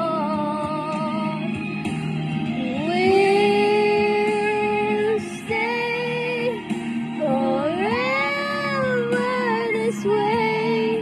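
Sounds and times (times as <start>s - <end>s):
woman singing: 0.0s - 1.6s, 2.6s - 11.0s
backing track music: 0.0s - 11.0s.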